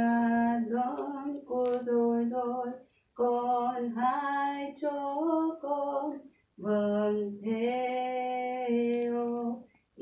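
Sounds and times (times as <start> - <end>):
woman singing unaccompanied: 0.0 - 9.7.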